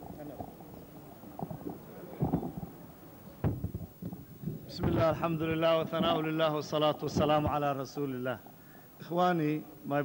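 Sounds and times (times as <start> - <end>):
low murmur of voices: 0.0 - 7.6.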